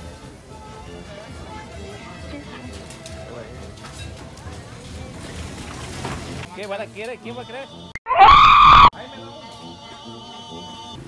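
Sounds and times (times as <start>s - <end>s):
person screaming: 8.1s - 8.9s.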